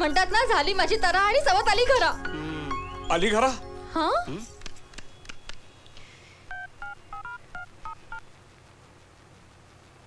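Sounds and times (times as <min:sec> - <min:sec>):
two-tone keypad beeps: 0:06.5 - 0:08.2.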